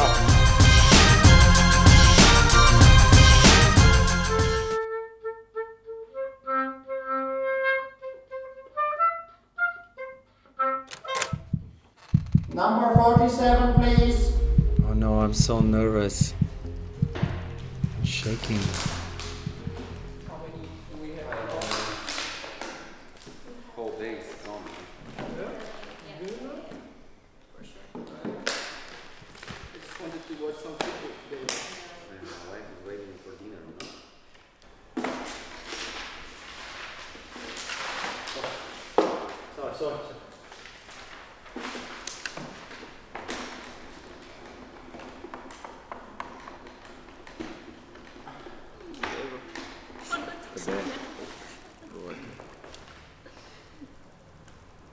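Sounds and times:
taps and knocks: 11.4 - 13.2.

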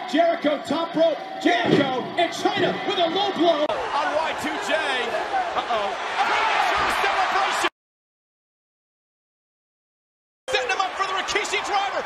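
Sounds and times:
arena crowd noise: 0.0 - 7.7, 10.5 - 12.0
man commentating: 0.0 - 7.7, 10.5 - 12.0.

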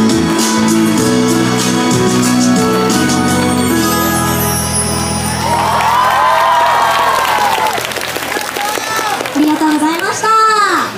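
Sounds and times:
audience cheering: 5.2 - 9.9.

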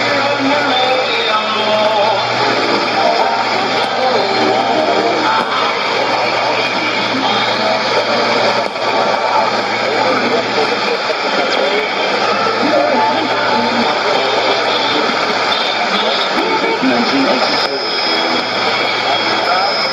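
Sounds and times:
low hum: 0.0 - 19.9
radio music: 0.0 - 19.9
radio static hiss: 0.0 - 19.9
voice over music: 0.0 - 19.9.

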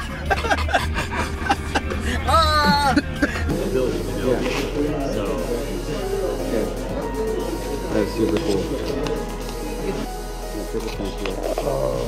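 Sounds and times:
crowd chatter in a hall: 3.5 - 12.0.

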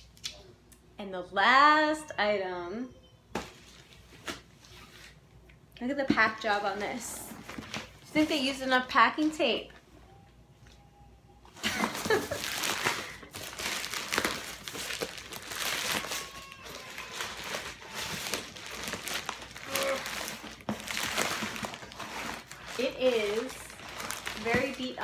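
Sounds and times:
packing tape and plastic crinkling: 11.6 - 25.0.

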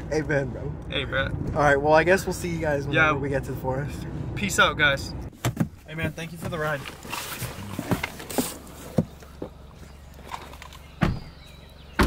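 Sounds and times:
rustling and handling noise: 5.3 - 10.9.

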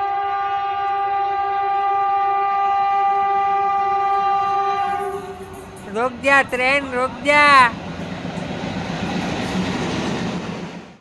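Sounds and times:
two-tone train horn blast: 0.0 - 5.9
train arriving: 0.0 - 11.0.

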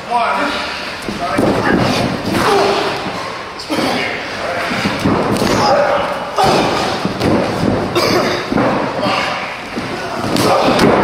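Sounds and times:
bodies slamming on ring canvas: 4.7 - 11.0.

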